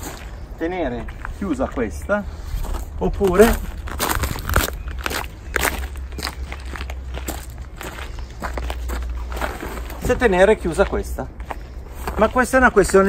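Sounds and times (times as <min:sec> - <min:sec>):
footsteps crunching on gravel: 0:00.0 - 0:13.0
steady low rumble: 0:00.0 - 0:13.0.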